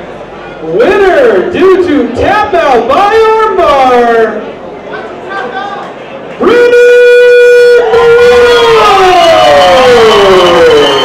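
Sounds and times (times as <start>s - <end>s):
announcer calling over loudspeaker: 0.7s - 4.4s, 6.4s - 10.0s.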